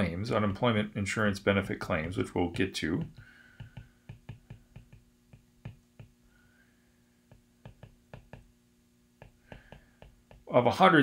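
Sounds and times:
stylus tapping on glass screen: 2.0 - 6.2, 7.3 - 8.5, 9.2 - 10.5.

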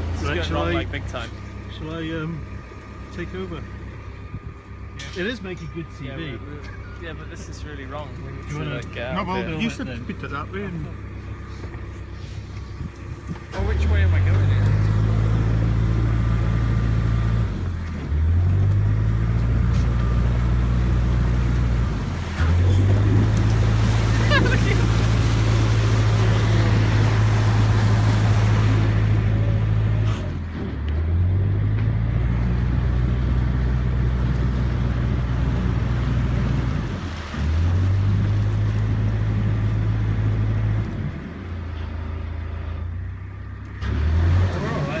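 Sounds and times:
boat diesel engine revving: 0.0 - 45.0.

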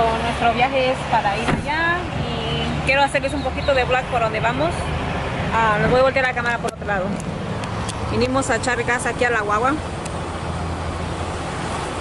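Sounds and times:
rushing background noise: 0.0 - 12.0
vehicle engine hum: 0.0 - 12.0.

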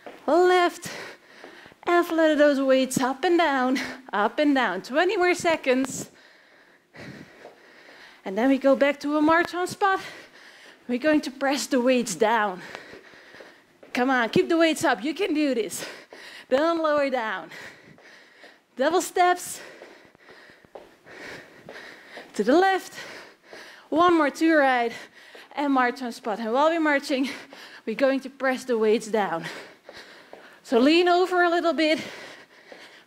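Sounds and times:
woman breathing: 0.0 - 1.8, 5.6 - 33.0.

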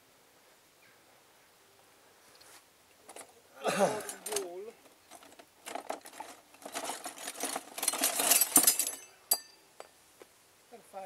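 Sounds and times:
small clicks and scrapes: 4.1 - 9.1.

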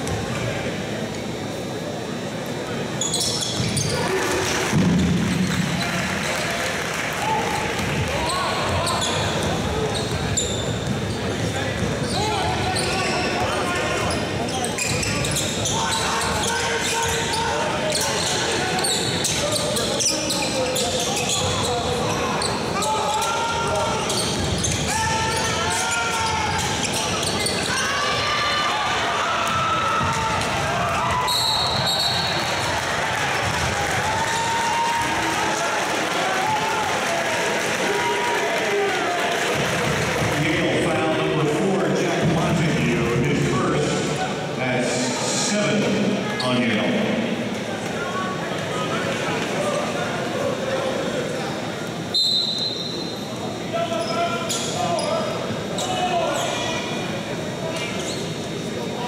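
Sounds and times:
crowd chatter: 0.0 - 59.0
sneakers squeaking: 2.6 - 6.4, 7.8 - 28.4, 29.5 - 32.7, 33.4 - 34.6, 51.4 - 59.0
high whistle: 31.3 - 32.4, 52.1 - 53.1.

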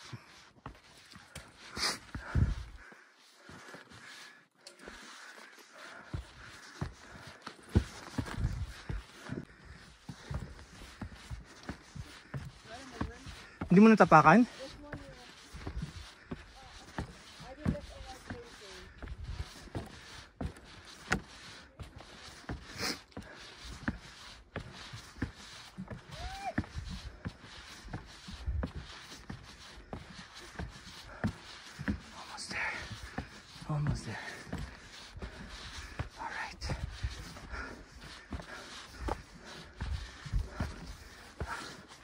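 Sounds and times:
boots on wooden stairs: 5.8 - 42.0.

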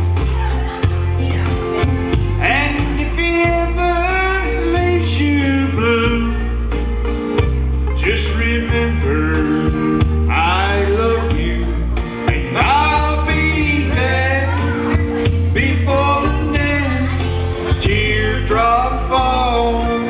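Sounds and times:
country backing music: 0.0 - 20.0
man singing into a microphone: 2.2 - 6.9, 7.9 - 20.0.

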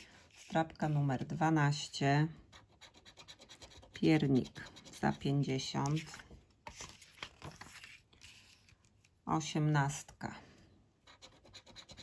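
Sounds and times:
paper scratch card rubbing: 0.0 - 1.1, 2.6 - 8.7, 11.2 - 12.0.

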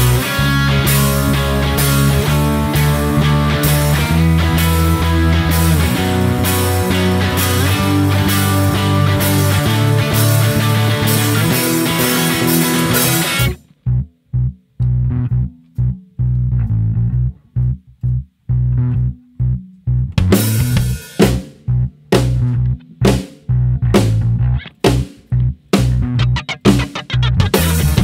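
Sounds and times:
rock band playing: 0.0 - 13.6, 20.2 - 28.0
choppy bass guitar notes: 0.0 - 28.0.

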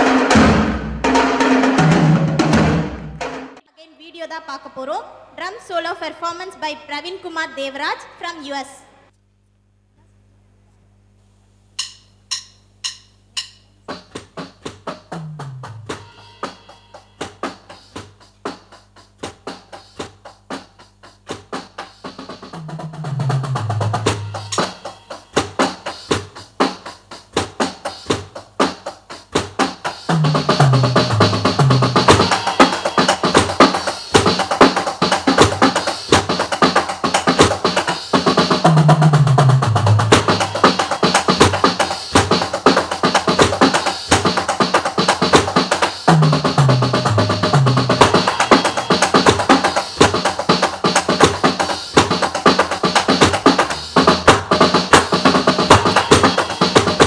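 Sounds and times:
electronic drum solo: 0.0 - 3.7, 11.8 - 57.0
ringing cymbal strikes: 16.0 - 17.8, 24.0 - 26.0, 32.0 - 34.5.

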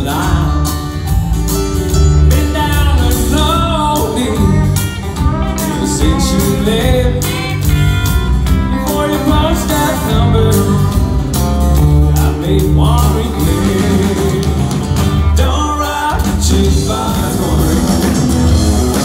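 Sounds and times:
man singing: 0.0 - 1.3, 2.0 - 7.9, 8.5 - 19.0
live country band playing: 0.0 - 19.0.

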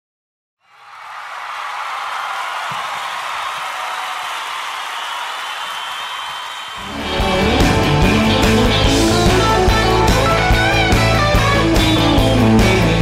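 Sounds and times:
audience applauding and cheering: 0.6 - 13.0
band playing electric guitar: 6.8 - 13.0.

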